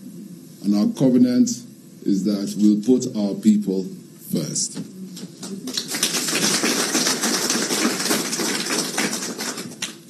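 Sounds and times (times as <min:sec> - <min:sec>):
audience applauding: 0:05.4 - 0:10.0.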